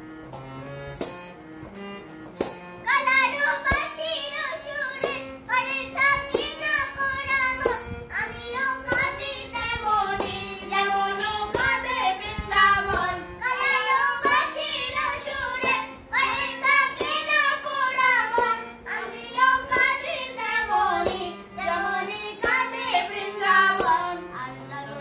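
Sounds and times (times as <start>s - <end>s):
harmonium chords: 0.0s - 25.0s
sharp percussive strokes: 2.2s - 2.8s, 3.6s - 4.0s, 4.9s - 5.3s, 12.8s - 24.1s
woman and girl singing: 2.9s - 25.0s.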